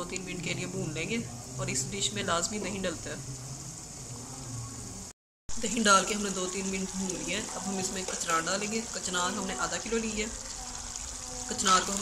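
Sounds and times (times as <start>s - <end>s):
meat bubbling and sizzling: 0.0s - 12.0s.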